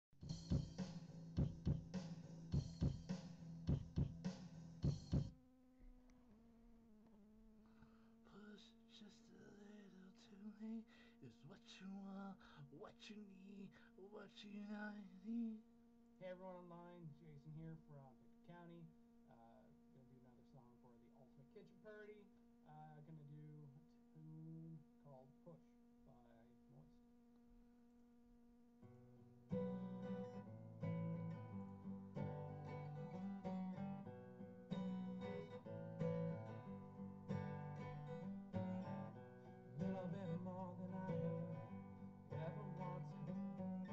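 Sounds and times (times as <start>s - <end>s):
acoustic guitar strumming: 0.2s - 5.3s, 28.8s - 43.9s
drum hits: 0.2s - 5.3s
faint steady hum: 0.2s - 43.9s.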